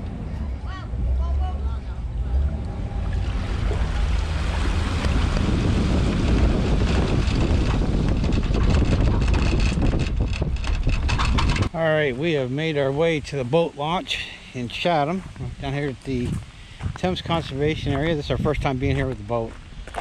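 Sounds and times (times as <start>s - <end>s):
wind buffeting microphone: 0.0s - 11.8s, 15.0s - 20.0s
low engine rumble: 0.0s - 20.0s
water churning and splashing: 2.1s - 11.7s.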